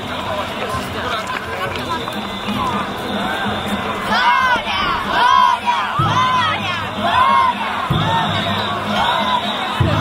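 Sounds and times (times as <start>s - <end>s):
children chanting in unison: 4.0s - 10.0s.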